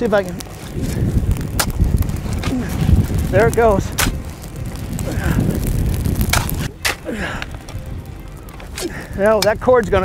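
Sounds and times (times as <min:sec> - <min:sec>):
wind rumbling on microphone: 0:00.0 - 0:10.0
shovel scraping and throwing dirt: 0:03.7 - 0:04.2, 0:06.1 - 0:07.8.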